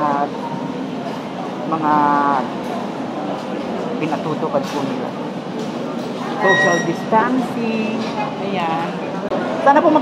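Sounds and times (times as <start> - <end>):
murmur of crowded indoor hall: 0.0 - 10.0.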